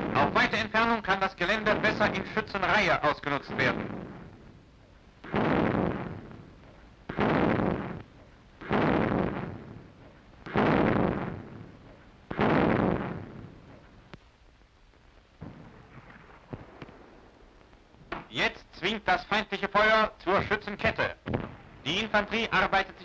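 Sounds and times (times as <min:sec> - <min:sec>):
loud explosions: 0:00.0 - 0:13.8, 0:15.4 - 0:18.5, 0:20.4 - 0:22.9
faint pops: 0:03.5 - 0:18.5, 0:20.8 - 0:22.1.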